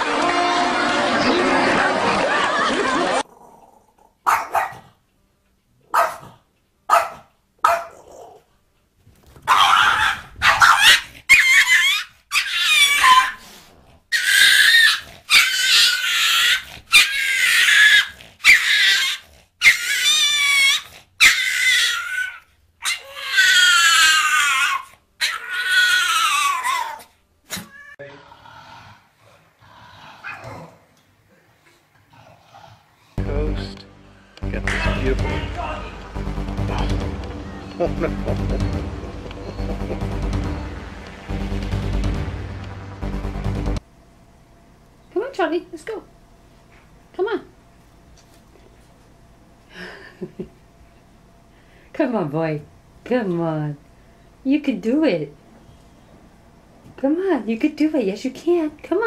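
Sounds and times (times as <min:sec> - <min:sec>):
dogs barking and yelping: 0:04.2 - 0:04.9, 0:05.9 - 0:08.4, 0:09.4 - 0:27.7, 0:30.1 - 0:30.8.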